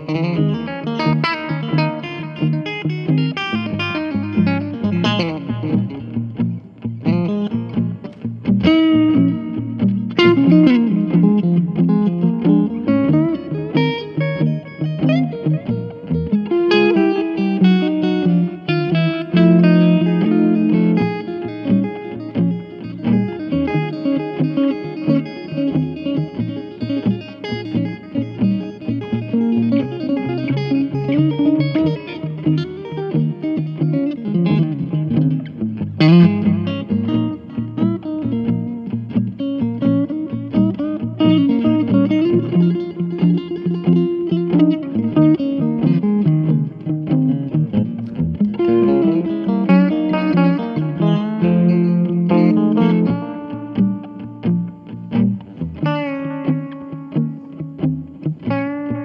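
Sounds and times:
electric guitar playing: 0:00.0 - 0:59.0.

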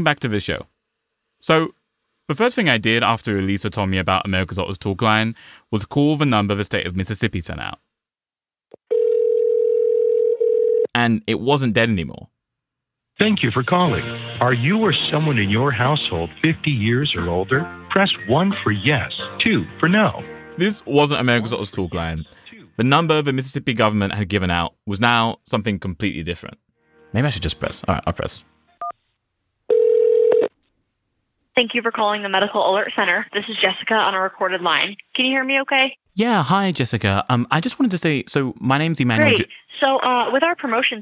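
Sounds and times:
telephone ringing tone: 0:08.8 - 0:10.9, 0:29.7 - 0:30.5.

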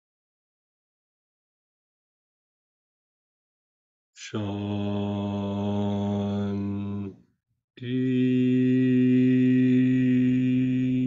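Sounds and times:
man chanting low held note: 0:04.2 - 0:07.2, 0:07.8 - 0:11.0.

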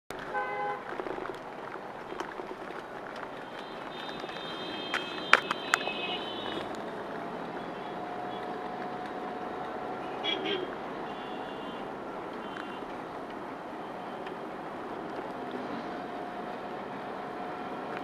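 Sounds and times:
car and motorbike traffic noise: 0:00.1 - 0:18.0
vehicle horn toot: 0:00.3 - 0:00.8, 0:03.5 - 0:06.7, 0:10.1 - 0:11.8.

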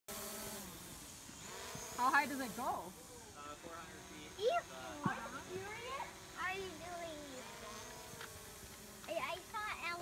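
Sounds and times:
drone propellers buzzing: 0:00.1 - 0:10.0.

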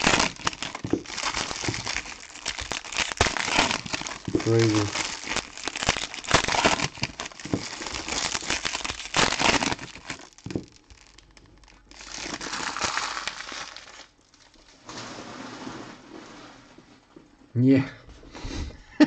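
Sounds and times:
card wrappers crinkling and tearing: 0:00.0 - 0:14.7.

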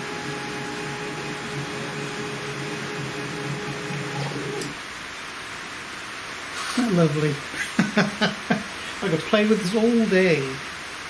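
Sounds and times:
stepper motor hum and whine: 0:00.0 - 0:04.8.

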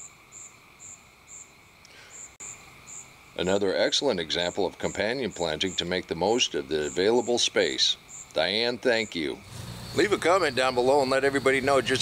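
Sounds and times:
faint insect chirping: 0:00.0 - 0:12.0.

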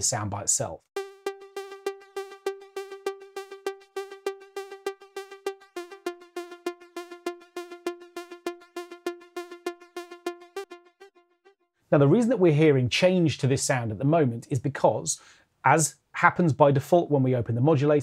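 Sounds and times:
synth pluck repeated notes: 0:01.0 - 0:11.6.

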